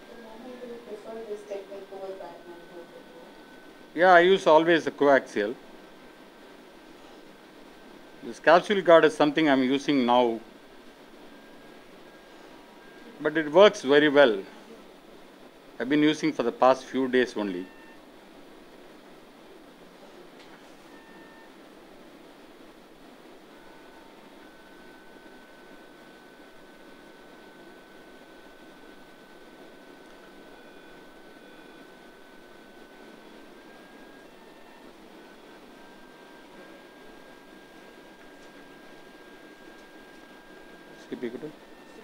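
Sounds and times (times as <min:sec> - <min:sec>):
long held electronic tone: 0:00.0 - 0:42.0.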